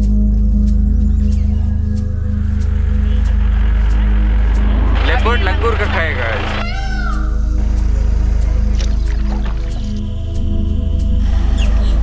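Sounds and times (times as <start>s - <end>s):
background music with drone: 0.0s - 12.0s.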